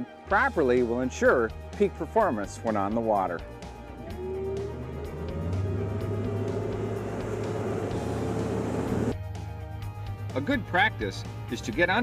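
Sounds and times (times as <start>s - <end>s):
background music: 0.0s - 12.0s
outboard motor revving: 3.6s - 9.2s
rushing water and hull noise: 3.9s - 9.2s.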